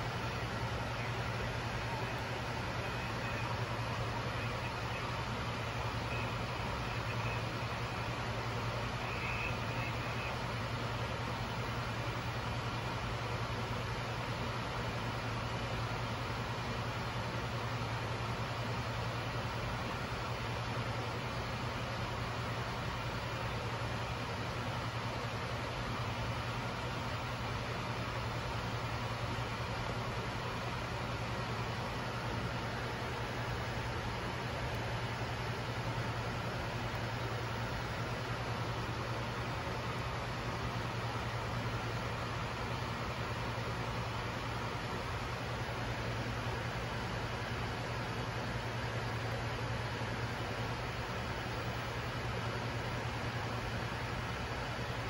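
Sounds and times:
airflow and engine noise: 0:00.0 - 0:55.0
constant low hum: 0:00.0 - 0:55.0.

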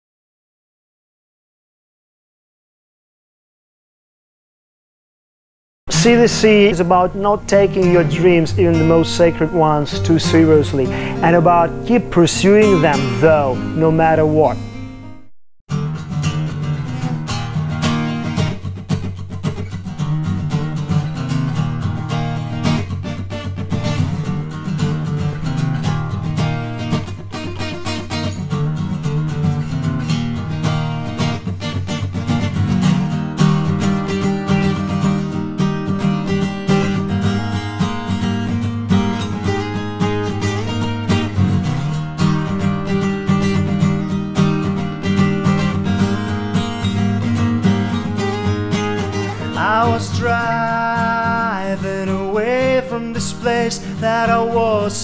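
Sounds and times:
acoustic guitar strumming: 0:05.9 - 0:55.0.

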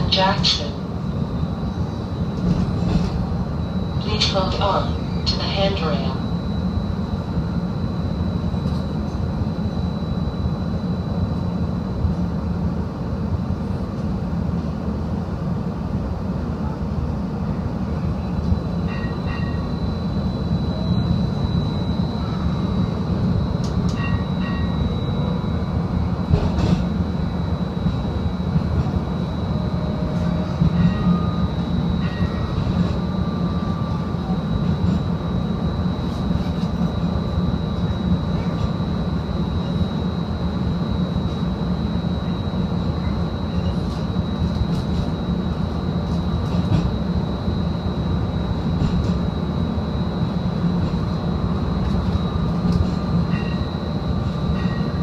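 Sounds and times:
streetcar rumbling: 0:00.0 - 0:55.0
high whine: 0:18.2 - 0:55.0.

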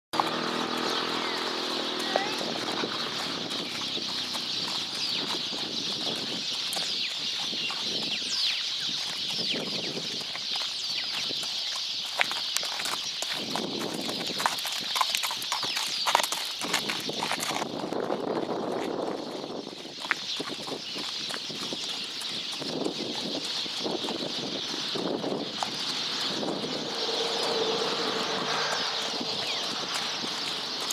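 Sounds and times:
birds chirping: 0:00.1 - 0:17.2, 0:18.0 - 0:30.9
horse hooves on gravel: 0:00.1 - 0:30.9.

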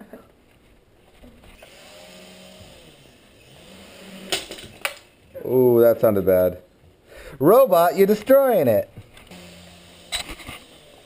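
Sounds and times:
toy helicopter motor whining: 0:01.6 - 0:05.2, 0:09.3 - 0:11.0.

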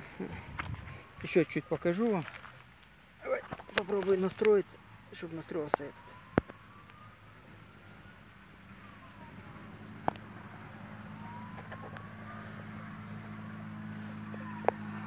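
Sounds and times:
vehicle engine humming: 0:00.0 - 0:15.0.

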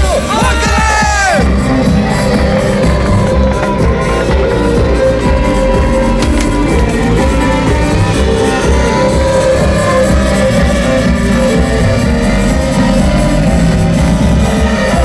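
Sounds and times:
live amplified band music: 0:00.0 - 0:15.0.

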